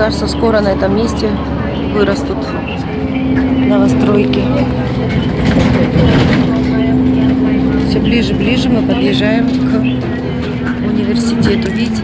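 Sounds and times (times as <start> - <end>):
bus engine running: 0.0 - 12.0
road noise: 0.0 - 12.0.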